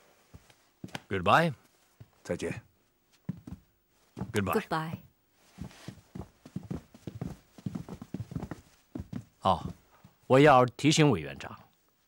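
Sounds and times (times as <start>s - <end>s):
footsteps on hard floor: 3.1s - 10.2s.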